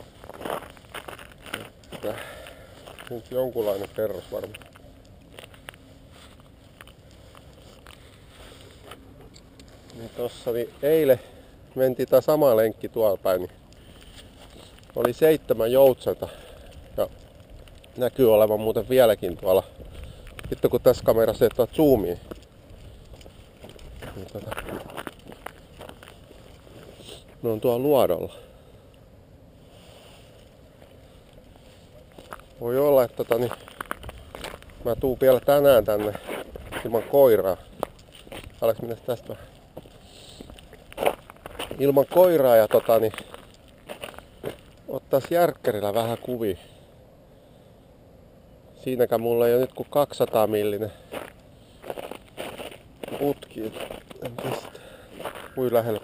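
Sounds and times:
man speaking: 1.5s - 2.4s, 3.0s - 4.6s, 9.9s - 13.6s, 15.0s - 16.4s, 18.0s - 19.7s, 20.5s - 22.4s, 24.0s - 24.8s, 27.0s - 28.5s, 32.6s - 33.7s, 34.8s - 37.7s, 38.6s - 39.6s, 41.7s - 43.3s, 44.9s - 46.8s, 53.1s - 54.8s, 55.5s - 56.0s
wind rumble on microphone: 18.7s - 25.9s, 33.8s - 37.0s.

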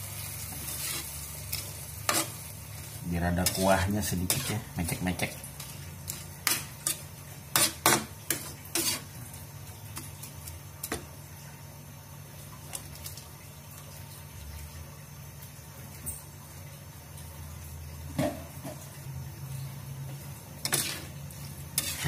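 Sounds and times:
shrimp simmering hum: 0.0s - 22.0s
metal spatula scraping wok: 0.5s - 2.4s, 3.4s - 4.8s, 5.6s - 9.1s, 20.6s - 22.0s.

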